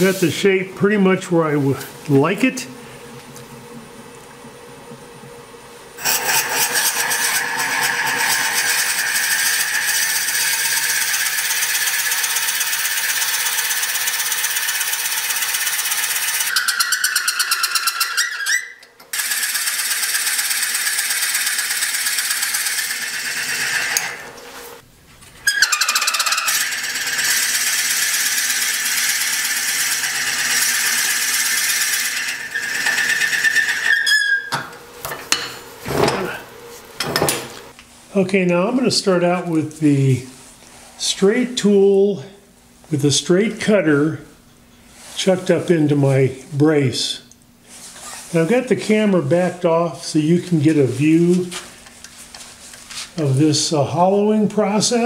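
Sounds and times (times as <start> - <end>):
drill bit boring into wood on lathe: 6.0 - 24.2, 25.5 - 34.2.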